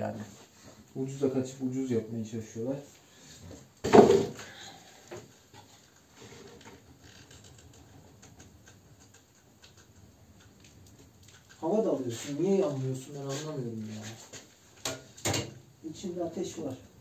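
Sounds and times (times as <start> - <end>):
loud thump: 3.8 - 4.4
stove fire rustling and ticking: 5.1 - 17.0.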